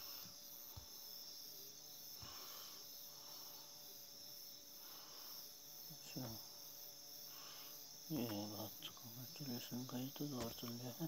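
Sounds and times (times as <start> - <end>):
faint high-pitched hiss: 0.0 - 11.0
person's voice: 8.1 - 11.0.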